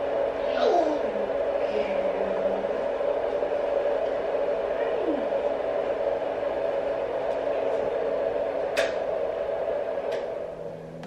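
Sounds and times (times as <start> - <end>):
constant hum: 0.0 - 11.0
steady whirring: 0.0 - 11.0.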